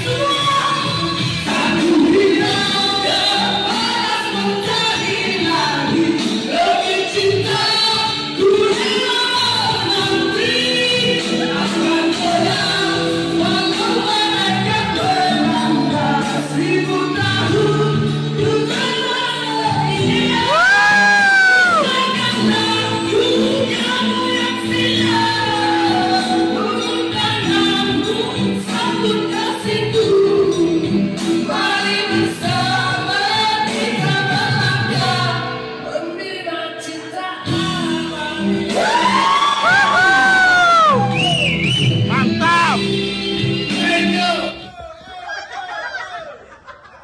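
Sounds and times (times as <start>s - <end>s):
man and woman singing: 0.0s - 41.3s, 42.1s - 44.7s
amplified music: 37.0s - 44.7s.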